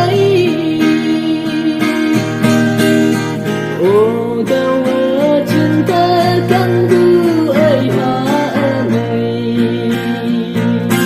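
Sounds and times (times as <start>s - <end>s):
person singing: 0.0s - 2.4s, 3.7s - 11.0s
acoustic guitar: 0.0s - 11.0s.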